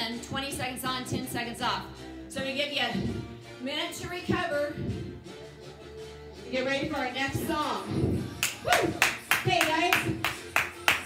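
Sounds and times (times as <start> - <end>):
hands clapping: 8.4 - 11.0.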